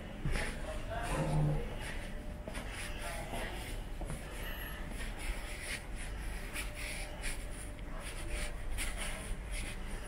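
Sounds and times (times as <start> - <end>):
footsteps scuffing on carpet: 0.2 - 7.5.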